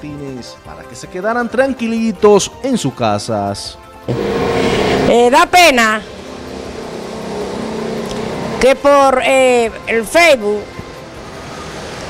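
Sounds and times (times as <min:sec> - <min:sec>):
street traffic hum: 0:04.1 - 0:05.4, 0:06.0 - 0:09.9, 0:10.7 - 0:12.0.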